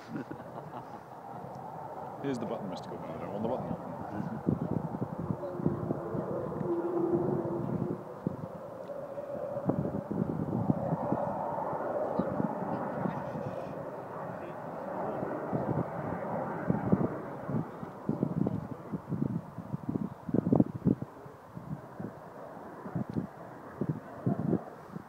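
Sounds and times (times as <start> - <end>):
distant jet aircraft rumble: 0.0 - 25.0
faint held tone: 5.2 - 8.0.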